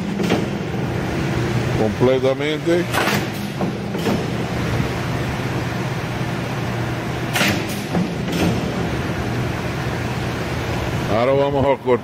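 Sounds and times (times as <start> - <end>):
machine motor humming: 0.0 - 11.8.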